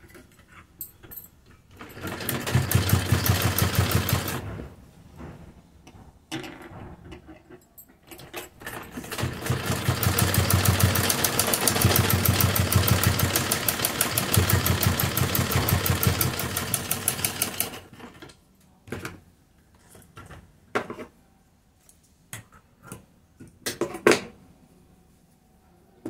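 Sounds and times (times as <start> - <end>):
sewing machine stitching: 1.7 - 4.7, 8.6 - 18.3.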